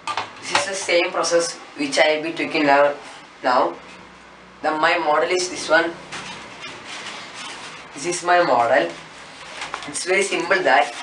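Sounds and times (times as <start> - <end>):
foam box rustling and scraping: 6.1 - 8.0.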